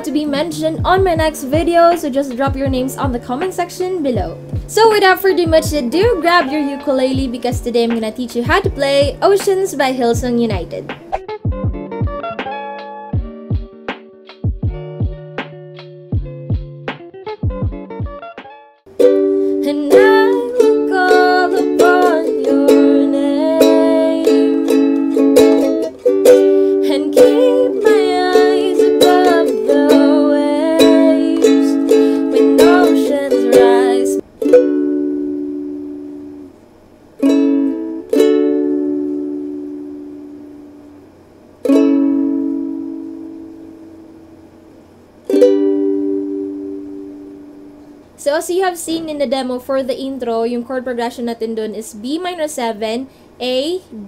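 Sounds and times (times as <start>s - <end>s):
woman singing: 0.0s - 10.9s, 19.6s - 24.8s, 26.8s - 34.2s
ukulele strumming: 0.0s - 11.2s, 18.9s - 36.6s, 37.2s - 48.1s.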